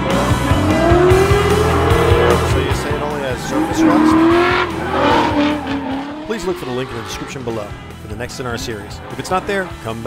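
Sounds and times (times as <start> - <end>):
car engine at high revs: 0.0 - 10.0
tyres squealing: 0.6 - 9.4.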